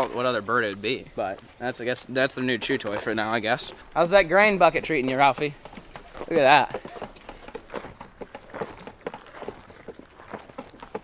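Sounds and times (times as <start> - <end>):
camel chewing grain: 0.0 - 11.0.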